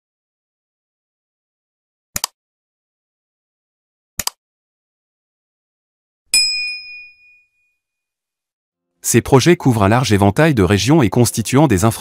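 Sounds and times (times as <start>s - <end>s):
bell ding: 6.4s - 7.7s.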